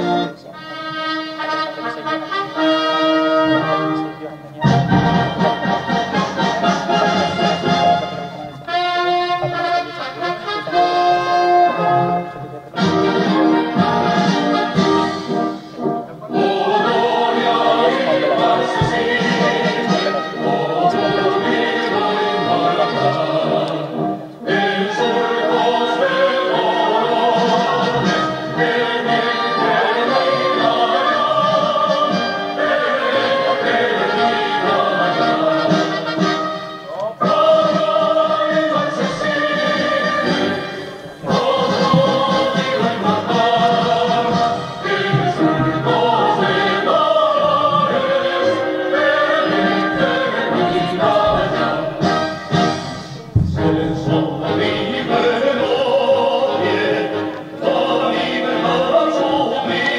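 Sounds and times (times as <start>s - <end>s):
orchestral anthem with brass: 0.0s - 59.9s
choir singing: 16.2s - 36.4s, 37.2s - 59.9s.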